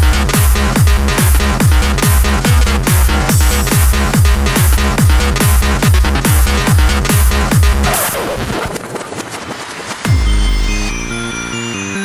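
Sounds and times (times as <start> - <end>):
kick drum: 0.0 - 7.9, 10.1 - 10.7
rapid percussive hits: 0.0 - 11.0.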